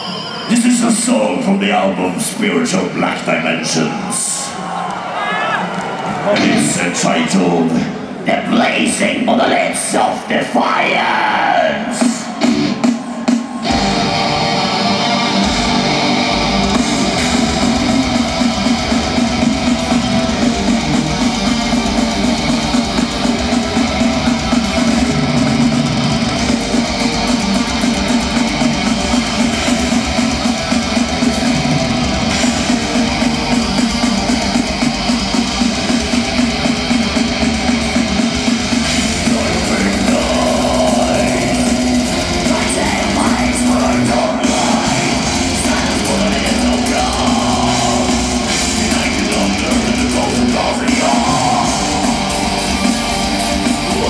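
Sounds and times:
distorted electric guitars: 0:05.9 - 0:54.0
bass guitar: 0:06.3 - 0:07.0, 0:13.6 - 0:54.0
full-band hits: 0:06.3 - 0:07.1, 0:11.9 - 0:54.0
rapid drumming: 0:11.9 - 0:14.1, 0:16.4 - 0:54.0.

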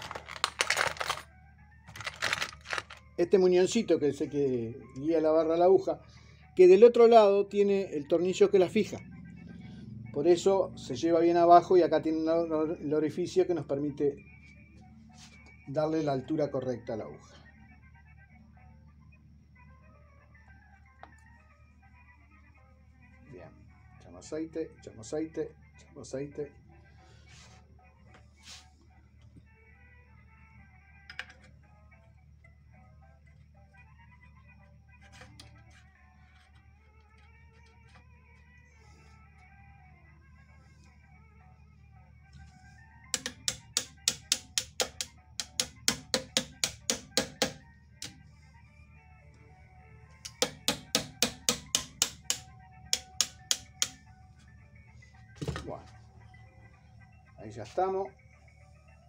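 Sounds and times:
faint music: 0:00.0 - 0:59.0
people talking: 0:03.2 - 0:06.0, 0:06.6 - 0:09.0, 0:10.2 - 0:14.2, 0:15.7 - 0:17.2, 0:57.4 - 0:58.1.

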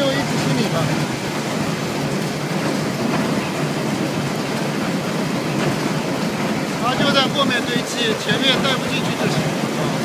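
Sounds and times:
recycling machinery running: 0:00.0 - 0:10.0.

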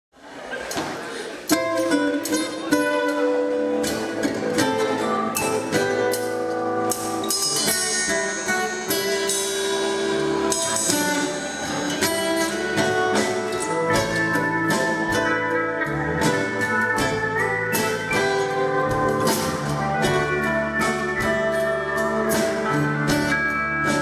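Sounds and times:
live country band playing: 0:00.5 - 0:24.0
regular drumbeat: 0:03.6 - 0:24.0.

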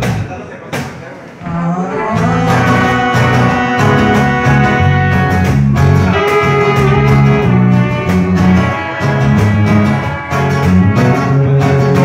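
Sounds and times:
acoustic guitar strums: 0:00.0 - 0:12.0.

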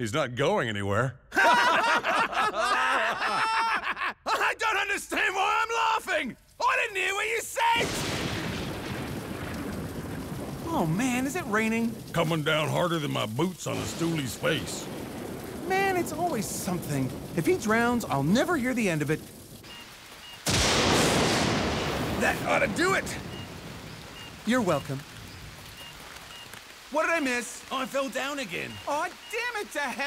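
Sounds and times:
heavy rain pouring: 0:06.6 - 0:30.0
thunderclap: 0:07.6 - 0:29.5.

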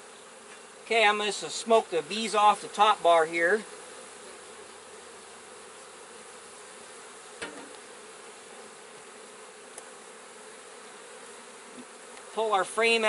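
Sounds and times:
bees buzzing: 0:00.0 - 0:13.0
sharp knock: 0:07.4 - 0:07.8.

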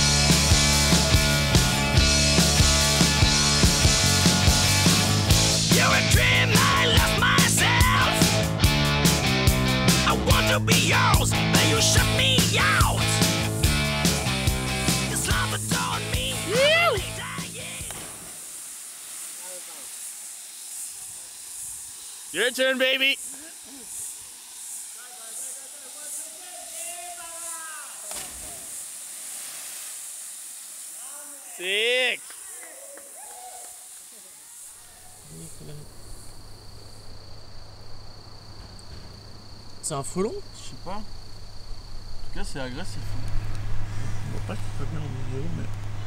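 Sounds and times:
insect buzz: 0:00.0 - 0:46.0
voices: 0:05.7 - 0:08.3, 0:10.0 - 0:13.3, 0:14.9 - 0:18.1, 0:20.9 - 0:24.3, 0:24.9 - 0:28.8, 0:31.0 - 0:36.3, 0:39.8 - 0:41.2, 0:42.2 - 0:43.3, 0:44.1 - 0:45.9
person shouting: 0:05.8 - 0:08.2, 0:10.1 - 0:13.1, 0:15.2 - 0:17.9
waterfall rushing into pool: 0:15.1 - 0:35.4.

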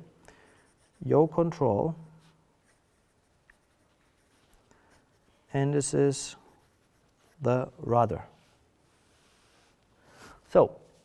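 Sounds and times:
pen scratching on paper: 0:00.5 - 0:01.1, 0:02.6 - 0:07.5.

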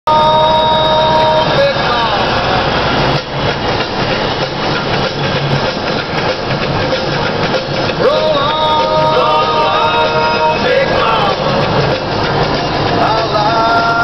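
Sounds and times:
truck engine and road rumble: 0:00.1 - 0:14.0.

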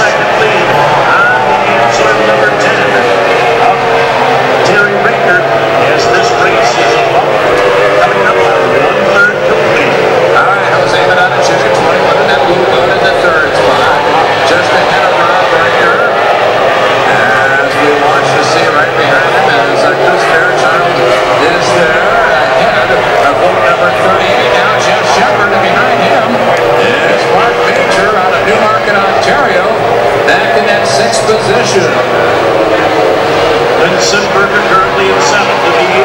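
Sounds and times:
racing outboard engine running hard: 0:00.0 - 0:36.0.

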